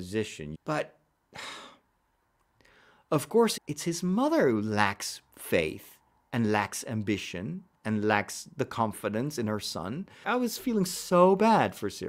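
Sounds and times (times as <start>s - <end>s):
man talking: 0.0s - 1.0s, 3.1s - 12.0s
man breathing in: 2.6s - 3.1s.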